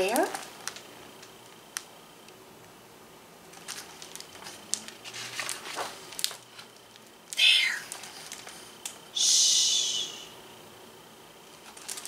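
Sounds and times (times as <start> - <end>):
book page turning: 3.5 - 7.1, 7.8 - 8.7.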